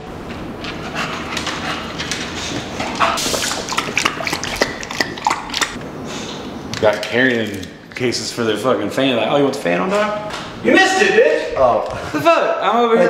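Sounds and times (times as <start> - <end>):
dog panting: 0.7 - 5.7.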